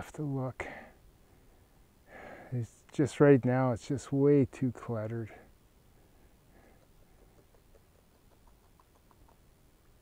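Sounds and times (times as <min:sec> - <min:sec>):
faint animal peeps: 0:06.6 - 0:10.0.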